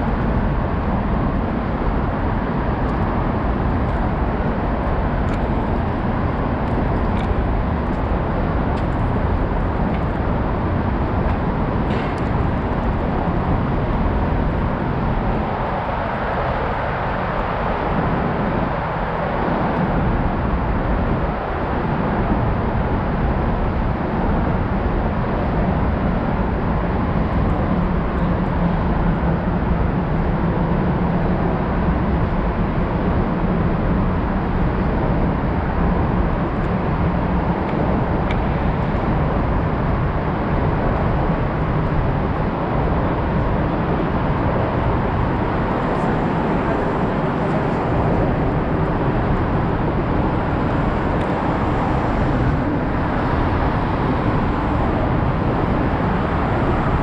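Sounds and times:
road traffic rumble: 0.0 - 57.0.

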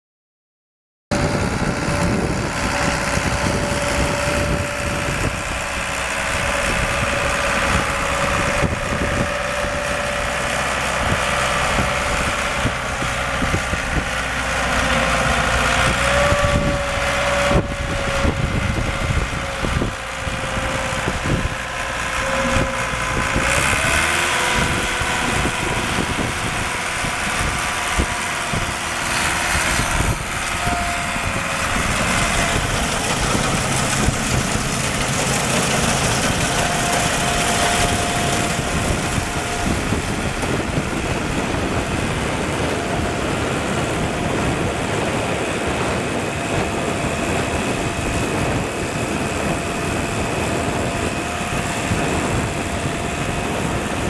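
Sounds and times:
diesel engine running: 1.1 - 54.0.

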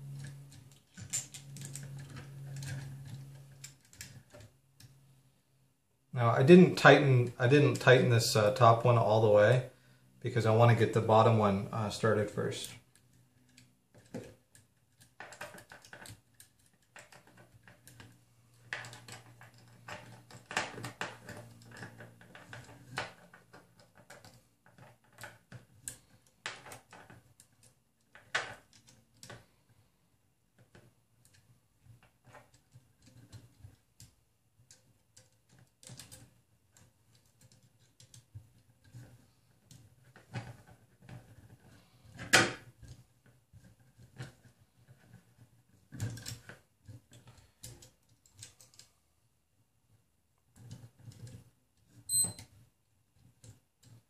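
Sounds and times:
small metal clicks and rattles: 0.0 - 5.0, 12.6 - 29.8, 30.5 - 49.0, 50.5 - 54.0.

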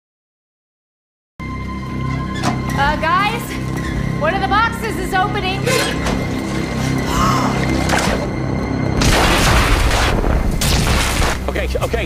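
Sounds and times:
tense background music: 1.4 - 12.0.

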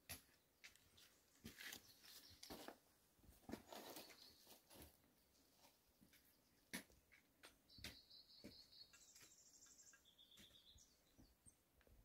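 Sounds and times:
footsteps on a trail: 0.0 - 11.4.

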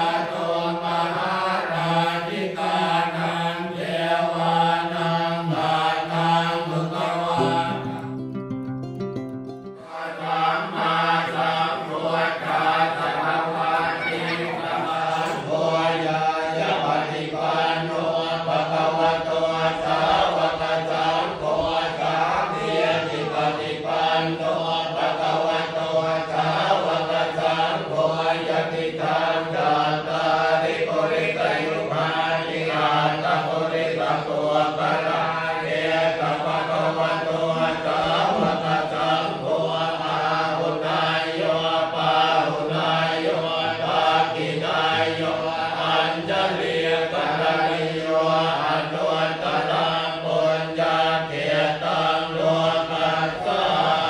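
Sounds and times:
monks chanting in unison: 0.0 - 7.9, 9.8 - 54.0.

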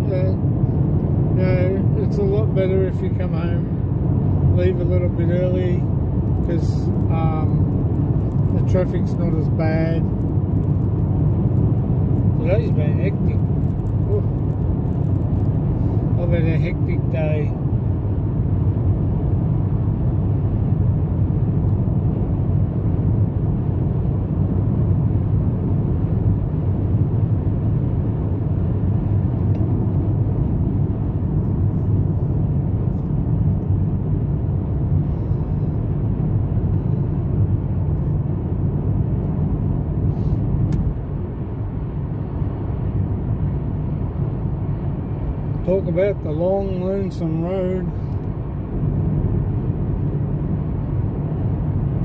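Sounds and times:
car road and engine rumble: 0.0 - 52.0.

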